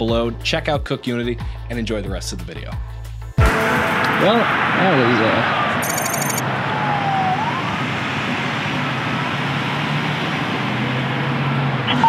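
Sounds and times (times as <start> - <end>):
siren wail: 4.2 - 9.0
traffic engine hum: 6.4 - 12.0.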